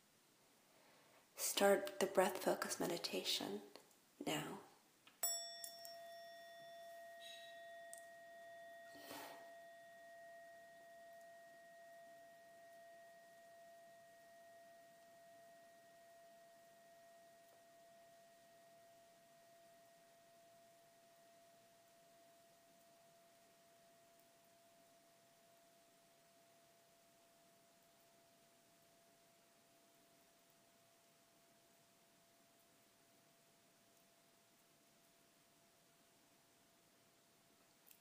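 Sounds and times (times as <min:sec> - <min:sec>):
meditation bell ringing: 0:05.2 - 0:26.6.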